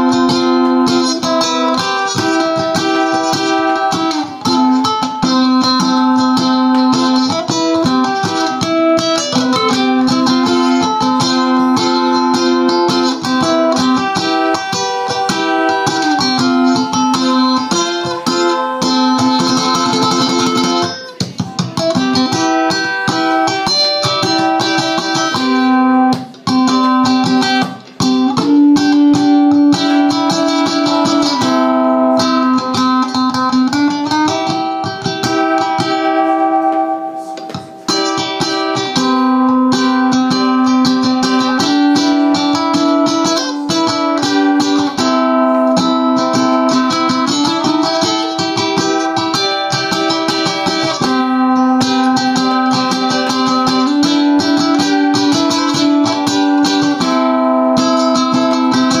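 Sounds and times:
ukulele strumming: 0:00.0 - 0:59.0.

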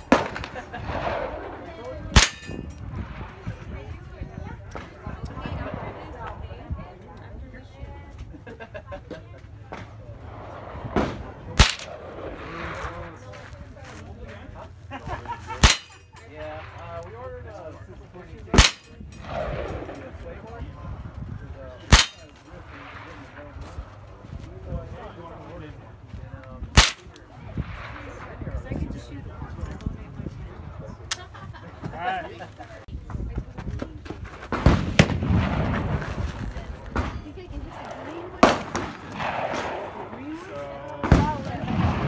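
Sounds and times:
rifle shots: 0:00.0 - 0:03.4, 0:10.3 - 0:12.8, 0:15.6 - 0:16.0, 0:18.5 - 0:20.2, 0:21.9 - 0:23.2, 0:26.8 - 0:28.2, 0:38.0 - 0:40.1, 0:41.0 - 0:42.0
low rumble: 0:00.0 - 0:08.2, 0:09.4 - 0:14.8, 0:16.4 - 0:31.1, 0:34.5 - 0:42.0.

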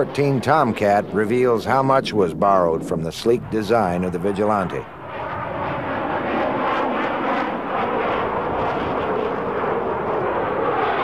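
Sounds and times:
jet engine roar: 0:00.0 - 0:11.0.

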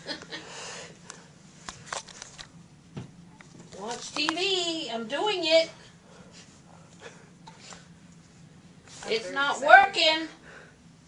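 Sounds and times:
low room hum: 0:00.0 - 0:11.0
faint clicks and rustles: 0:01.0 - 0:02.6, 0:03.3 - 0:04.8.

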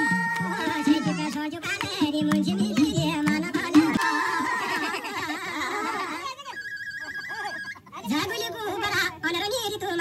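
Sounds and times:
people talking over one another: 0:00.0 - 0:04.9.

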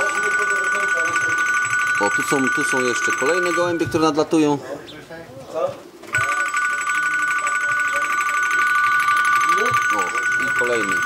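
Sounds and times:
warbling electronic ringing tone: 0:00.0 - 0:04.5, 0:06.1 - 0:11.0.

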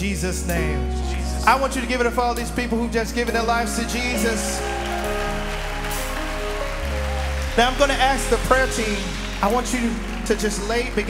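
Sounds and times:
soft worship band music: 0:00.0 - 0:11.0
congregation clapping: 0:03.2 - 0:11.0.

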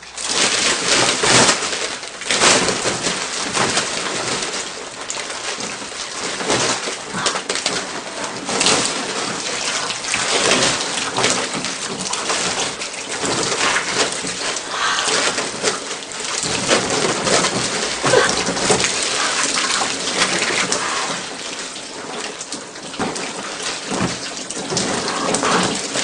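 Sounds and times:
slime pouring and splashing: 0:00.0 - 0:26.0.

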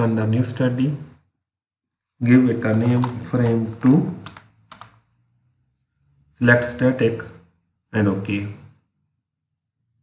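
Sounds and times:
computer keyboard keystrokes: 0:02.7 - 0:05.0.

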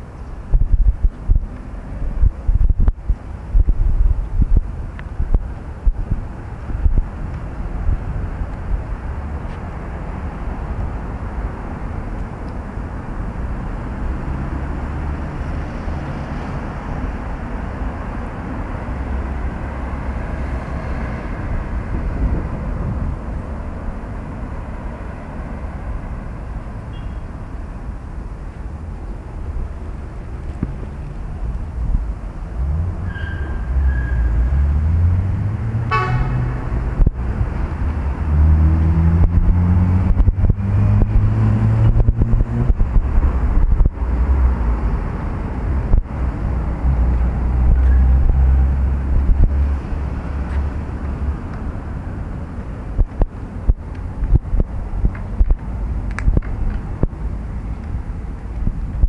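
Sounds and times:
rumble of passing vehicles: 0:00.0 - 0:59.0
engine speeding up: 0:13.3 - 0:17.8, 0:31.9 - 0:57.4
short car horn toot: 0:26.9 - 0:27.2, 0:35.9 - 0:36.4.

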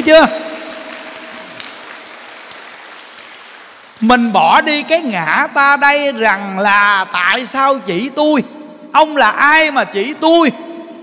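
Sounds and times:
audience applause: 0:00.0 - 0:04.1.

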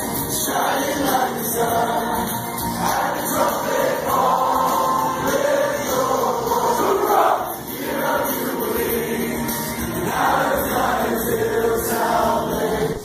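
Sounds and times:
accompanying music: 0:00.0 - 0:13.0
men singing worship song: 0:00.3 - 0:13.0.

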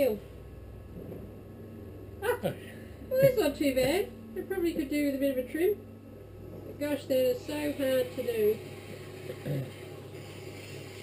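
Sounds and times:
potter's wheel humming: 0:00.0 - 0:11.0.

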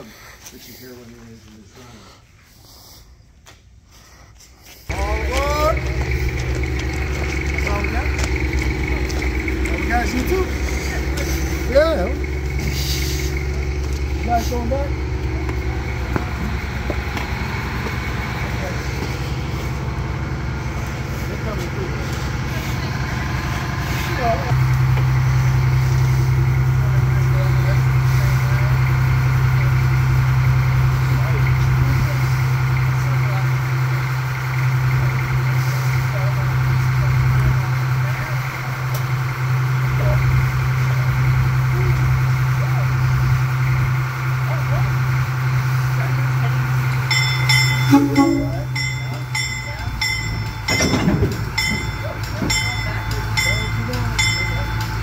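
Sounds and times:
diesel locomotive engine running: 0:04.8 - 0:55.0
regular repeated ringing: 0:47.1 - 0:55.0.

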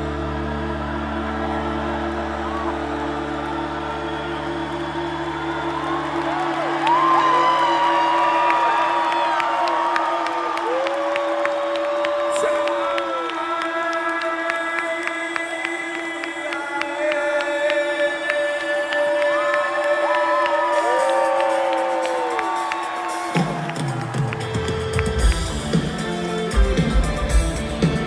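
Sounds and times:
low bass: 0:00.0 - 0:06.8
sustained synthesizer chords: 0:00.0 - 0:06.8
crowd cheering and whooping: 0:00.0 - 0:14.3, 0:18.7 - 0:28.0.

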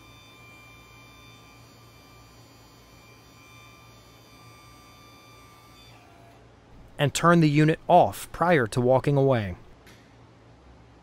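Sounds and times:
electric motor hum with whine: 0:00.0 - 0:07.0.

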